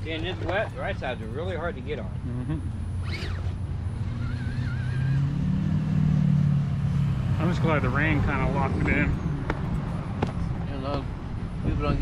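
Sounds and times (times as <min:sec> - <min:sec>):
electric motor and gears whirring: 0:02.7 - 0:06.2.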